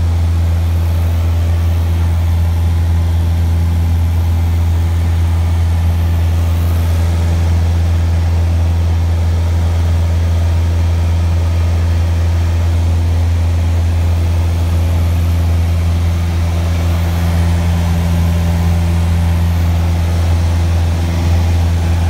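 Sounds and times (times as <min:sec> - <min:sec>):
propeller plane engine droning: 0:00.0 - 0:22.0.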